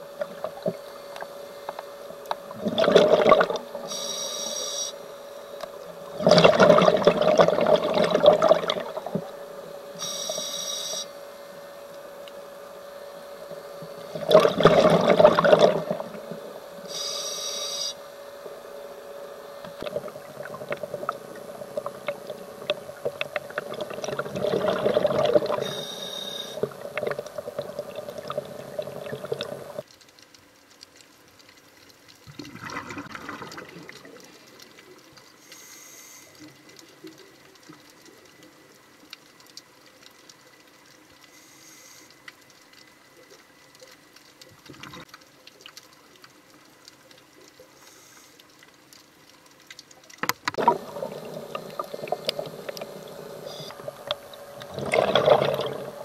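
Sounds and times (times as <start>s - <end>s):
underwater exhaled air bubbles: 0.0s - 4.1s, 5.6s - 10.4s, 13.2s - 17.1s, 19.6s - 29.9s, 32.2s - 35.6s, 50.5s - 56.0s
steady hum: 0.0s - 30.5s, 46.0s - 56.0s
faint crackle: 0.0s - 56.0s
regulator hissing: 3.8s - 5.1s, 9.9s - 11.2s, 15.8s - 18.0s, 50.6s - 54.7s.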